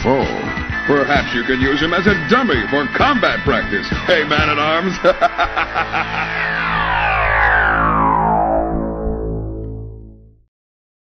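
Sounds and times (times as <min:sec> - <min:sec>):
distorted electric guitar chord: 0:01.1 - 0:10.4
falling pitch sweep: 0:02.8 - 0:10.4.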